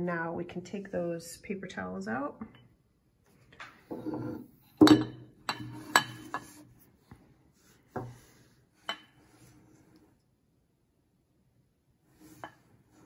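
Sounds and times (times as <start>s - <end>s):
glass jars clinking: 3.9s - 6.6s.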